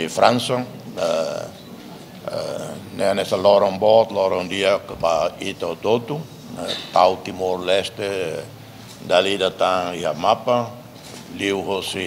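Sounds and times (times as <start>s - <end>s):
man's drawn-out hesitation sounds: 0.0s - 12.0s.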